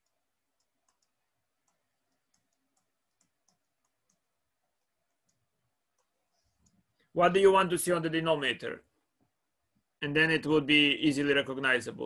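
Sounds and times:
stylus tapping on a tablet: 0:00.0 - 0:06.9.

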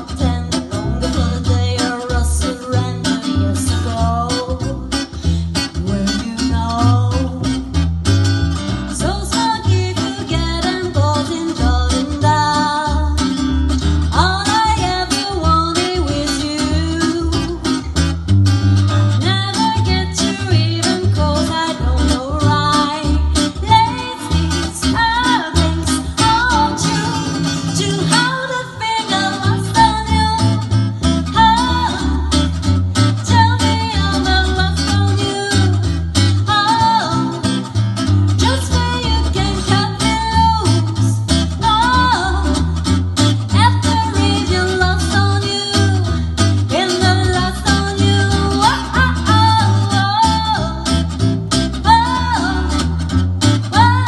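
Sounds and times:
woman singing: 0:00.0 - 0:07.9, 0:08.8 - 0:17.9, 0:19.1 - 0:54.0
guitar: 0:00.0 - 0:54.0
plucked double bass: 0:00.0 - 0:54.0.

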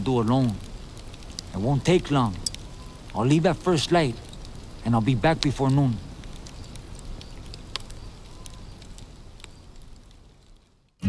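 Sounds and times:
campfire crackling: 0:00.0 - 0:11.0.

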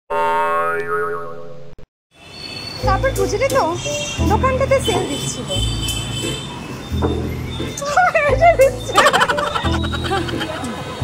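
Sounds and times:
comic boing sound effect: 0:00.1 - 0:01.7.

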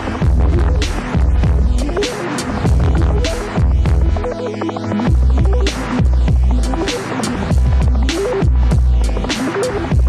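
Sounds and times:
electronic music with throbbing bass: 0:00.0 - 0:10.0.

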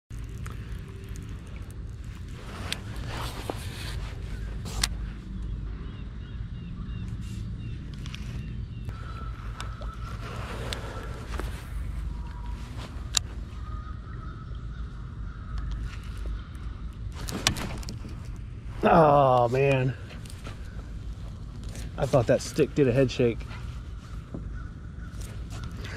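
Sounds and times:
steady low rumble: 0:00.1 - 0:25.9.

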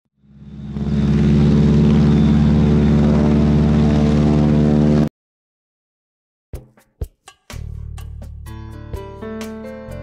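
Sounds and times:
propeller airplane engine: 0:00.1 - 0:05.1.

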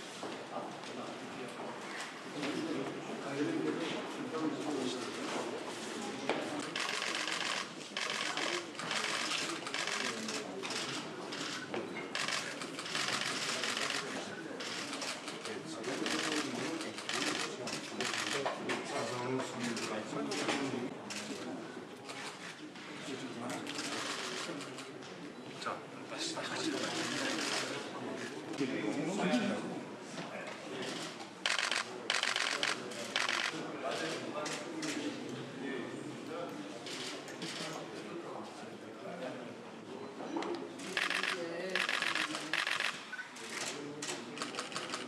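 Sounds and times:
murmur of voices: 0:00.0 - 0:45.0
low conversation: 0:00.2 - 0:45.0
camera shutters clicking: 0:30.9 - 0:34.1, 0:40.8 - 0:45.0.

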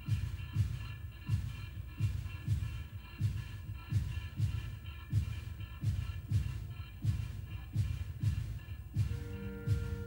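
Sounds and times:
electronic jazz band playing: 0:00.0 - 0:10.0.

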